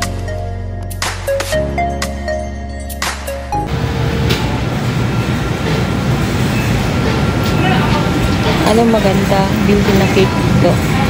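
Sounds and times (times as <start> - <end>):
supermarket background rumble: 3.7 - 11.0.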